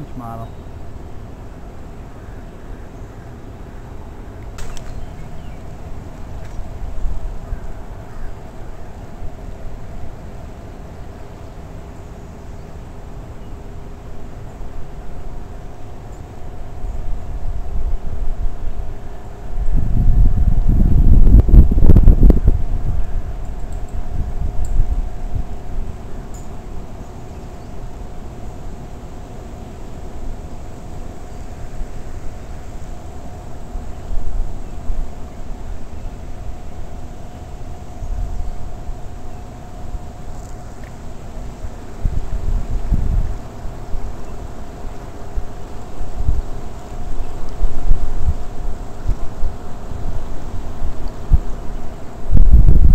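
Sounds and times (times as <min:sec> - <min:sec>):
faint steady hum: 0:00.0 - 0:52.9
wind buffeting microphone: 0:16.4 - 0:27.0, 0:31.2 - 0:52.9.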